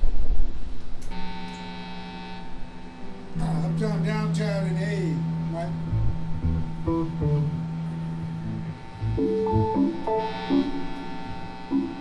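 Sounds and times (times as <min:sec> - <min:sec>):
electric bass notes: 0:01.0 - 0:12.0
electric guitar single notes: 0:01.1 - 0:12.0.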